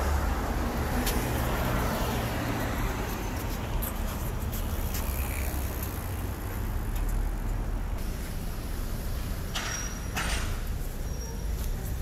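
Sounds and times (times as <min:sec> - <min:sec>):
passing cars rumbling: 0:00.0 - 0:12.0.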